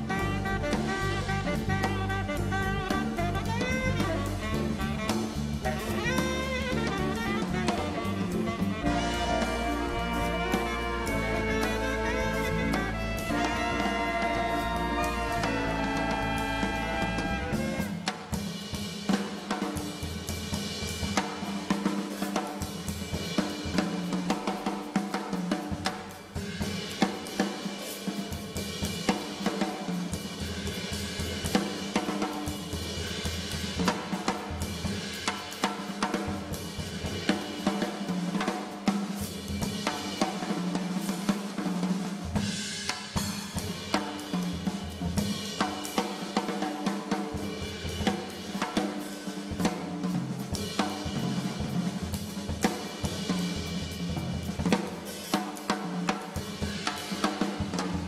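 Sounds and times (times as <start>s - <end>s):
jazz drum kit groove: 0.0s - 58.0s.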